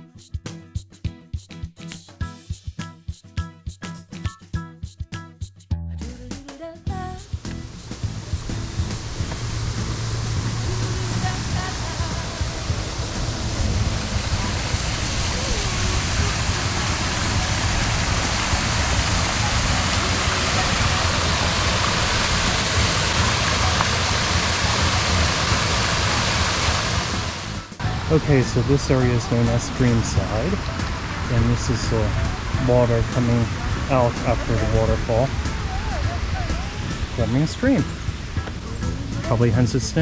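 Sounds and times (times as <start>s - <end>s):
waterfall splashing: 7.3s - 40.0s.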